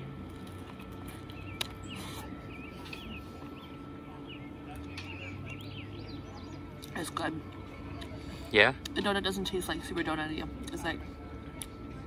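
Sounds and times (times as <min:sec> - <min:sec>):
faint steady hum: 0:00.0 - 0:12.0
small birds chirping: 0:01.1 - 0:08.3.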